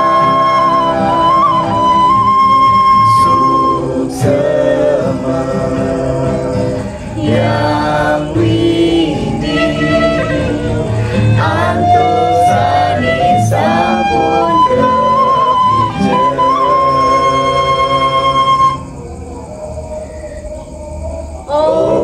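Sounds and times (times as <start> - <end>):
acoustic guitar: 0.0 - 19.0
several voices singing together: 0.0 - 19.0, 21.5 - 22.0
bamboo flute: 0.0 - 19.2
woman singing: 3.1 - 18.0.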